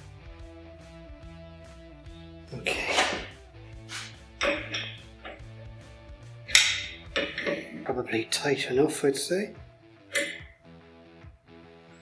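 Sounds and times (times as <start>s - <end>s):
background guitar music: 0.0s - 12.0s
metal fitting and spanner clinking: 4.4s - 5.4s, 6.5s - 7.9s.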